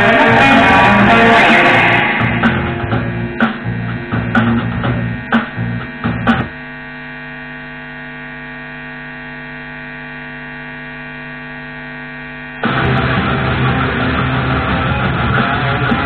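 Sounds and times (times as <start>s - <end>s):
loud music hit: 0.0s - 6.5s, 12.6s - 16.0s
loud electric guitar: 0.0s - 9.1s, 11.8s - 16.0s
electrical mains hum: 0.0s - 16.0s.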